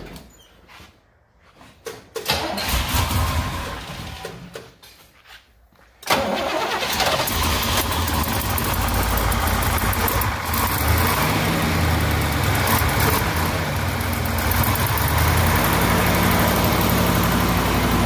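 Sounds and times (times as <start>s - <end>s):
car engine starting and idling: 2.2s - 4.6s, 6.0s - 18.0s.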